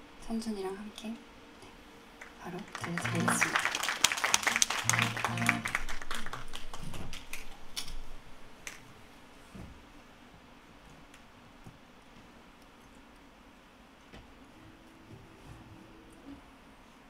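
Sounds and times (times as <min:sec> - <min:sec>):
audience handclaps: 0:02.2 - 0:08.0.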